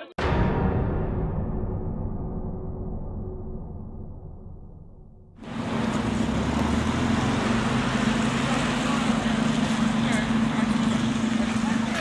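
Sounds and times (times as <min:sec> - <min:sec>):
outdoor noise: 0:00.3 - 0:12.0
truck engine running: 0:05.4 - 0:12.0
faint voices: 0:08.2 - 0:12.0.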